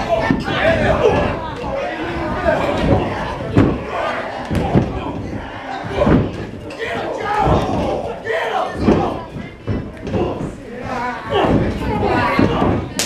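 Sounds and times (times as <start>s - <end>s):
crowd shouting and yelling: 0.0s - 13.0s
thuds of bodies landing: 0.0s - 13.0s.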